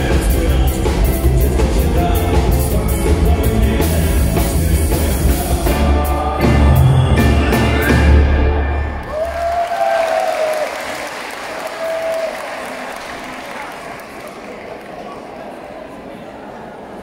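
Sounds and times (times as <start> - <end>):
live band with singer: 0.0 - 9.2
audience applauding: 9.0 - 15.4.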